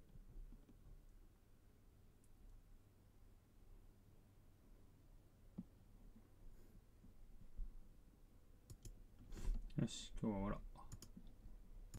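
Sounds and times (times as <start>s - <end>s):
computer mouse clicks: 8.6s - 9.0s, 10.8s - 11.9s
person speaking: 9.7s - 11.1s.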